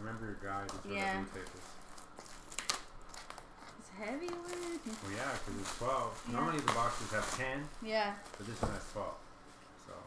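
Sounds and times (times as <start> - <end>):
plastic shrink wrap crinkling: 0.0 - 9.2.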